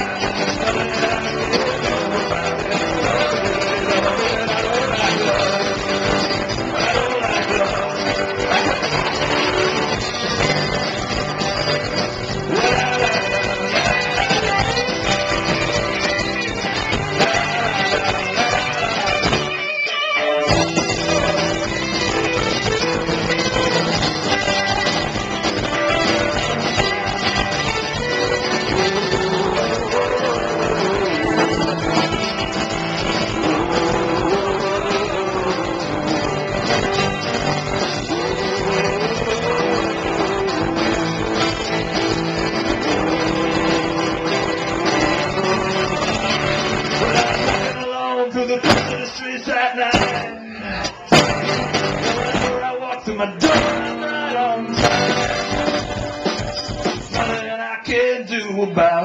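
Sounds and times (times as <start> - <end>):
drum kit: 0.0 - 19.7, 20.5 - 47.9, 48.6 - 49.2, 49.9 - 50.3, 50.9 - 52.7, 53.4 - 57.6
strummed acoustic guitar: 0.0 - 58.2
electric guitars: 0.0 - 59.0.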